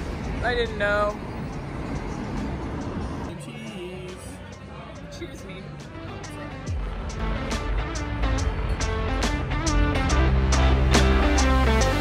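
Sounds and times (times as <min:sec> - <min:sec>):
car road and engine rumble: 0:00.0 - 0:05.1.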